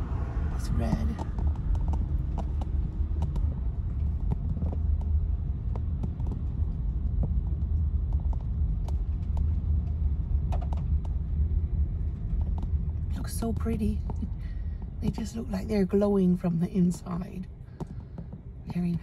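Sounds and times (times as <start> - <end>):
car engine rumble: 0.0 - 19.0
road noise inside car: 0.0 - 19.0.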